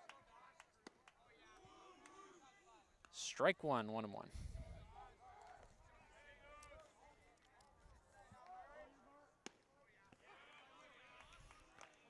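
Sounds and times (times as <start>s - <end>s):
distant voices of players and spectators: 0.0s - 12.0s.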